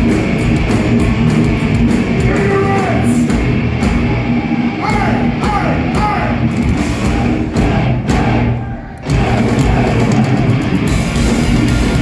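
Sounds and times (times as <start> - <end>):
thrash metal band playing live: 0.0 - 12.0.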